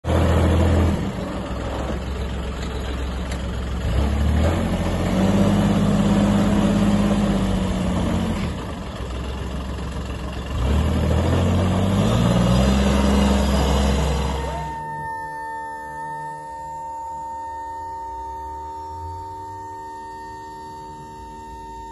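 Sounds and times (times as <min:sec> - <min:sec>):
vehicle engine revving: 0:03.8 - 0:08.8, 0:10.4 - 0:14.8
steady high tone: 0:13.4 - 0:21.9.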